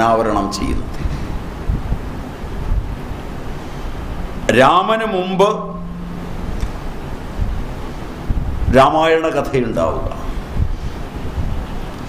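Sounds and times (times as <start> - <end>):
low steady hum: 0.0 - 12.0
rushing noise with low rumble: 0.6 - 4.6, 5.7 - 8.8, 9.5 - 12.0.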